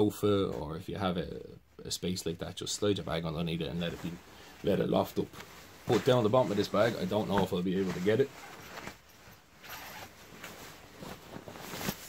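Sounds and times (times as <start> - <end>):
sleeping bag fabric rustling: 3.6 - 12.0.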